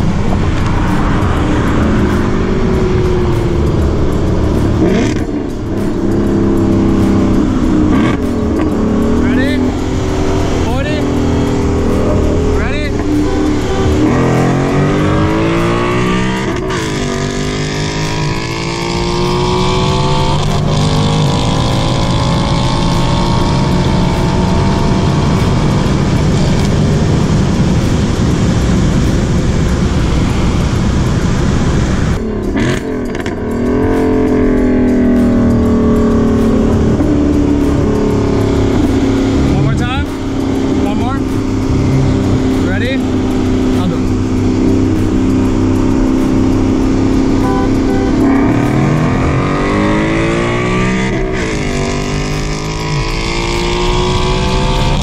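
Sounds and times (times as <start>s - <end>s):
car engine revving at full throttle: 0.0s - 55.0s.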